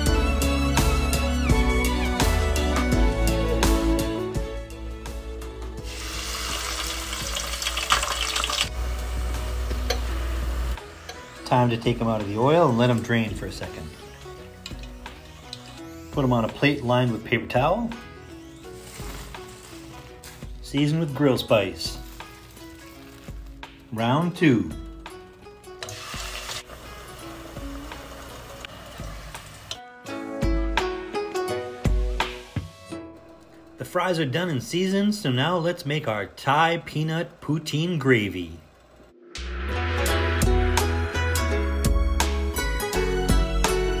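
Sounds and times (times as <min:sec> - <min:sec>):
background music: 0:00.0 - 0:44.0
fries sizzling in hot oil: 0:05.8 - 0:16.5, 0:18.2 - 0:29.8.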